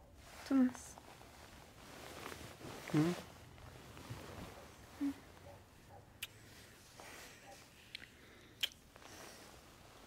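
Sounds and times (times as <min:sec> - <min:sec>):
person humming closed-mouth: 0:02.9 - 0:03.3.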